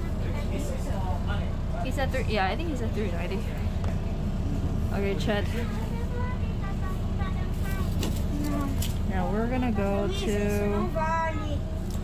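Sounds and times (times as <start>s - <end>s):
bus engine idling: 0.0s - 12.0s.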